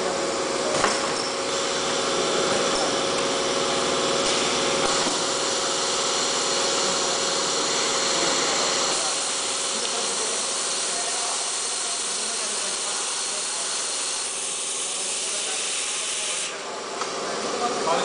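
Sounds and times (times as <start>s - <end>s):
machine humming and hissing: 0.0s - 18.0s.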